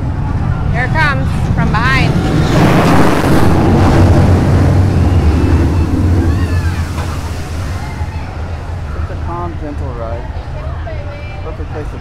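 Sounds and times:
roller coaster rushing past: 0.0s - 9.3s.

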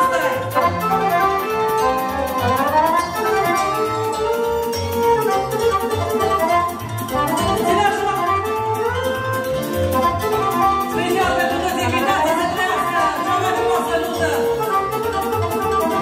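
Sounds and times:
accordion playing lively melody: 0.0s - 16.0s
backing band beat: 0.0s - 16.0s.

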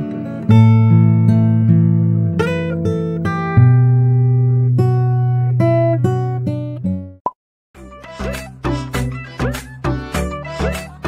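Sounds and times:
acoustic guitar plucking: 0.0s - 7.2s
music with a regular beat: 7.8s - 11.0s.

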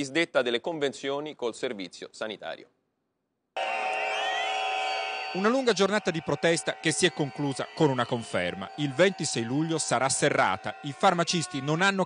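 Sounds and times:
crowd blowing whistles: 3.6s - 12.0s.

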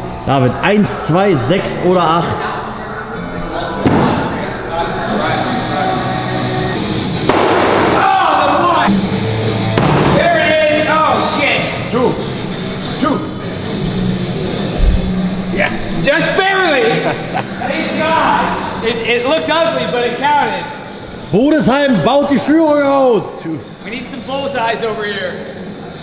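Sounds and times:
background music: 0.0s - 26.0s.

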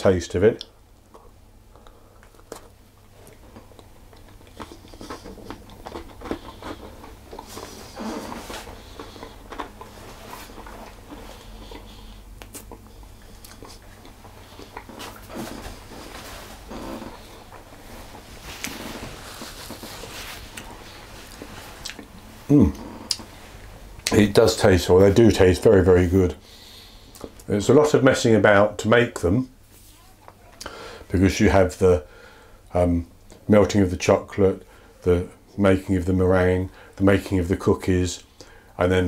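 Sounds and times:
mouth noises: 4.2s - 23.4s.

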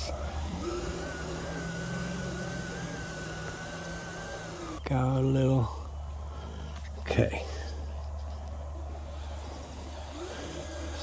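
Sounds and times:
toy truck electric motor whining: 0.0s - 5.0s, 8.1s - 11.0s.

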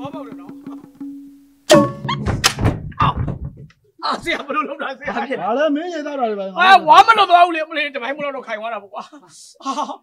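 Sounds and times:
drums and gongs striking: 0.0s - 3.1s.

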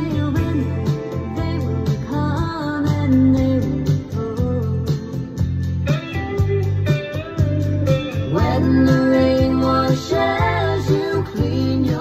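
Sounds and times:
electric guitar strumming: 5.2s - 11.9s
person singing: 8.1s - 12.0s.

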